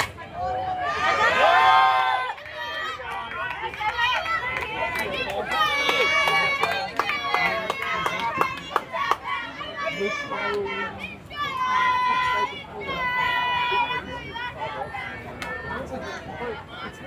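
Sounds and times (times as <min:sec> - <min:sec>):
children shouting and cheering: 0:00.2 - 0:17.0.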